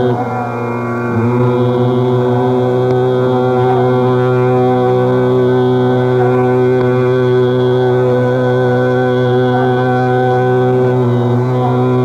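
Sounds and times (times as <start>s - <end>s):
slow sliding melody: 0.0s - 12.0s
steady drone: 0.0s - 12.0s.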